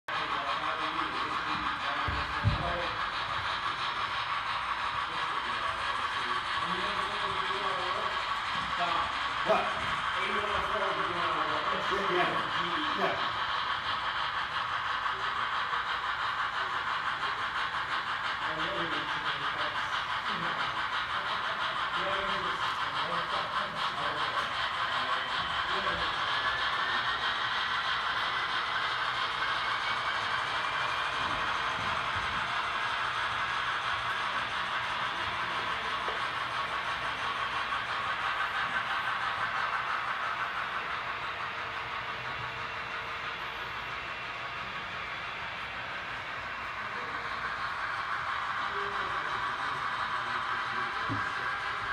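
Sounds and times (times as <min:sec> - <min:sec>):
model trains whirring on track: 0:00.1 - 0:51.9.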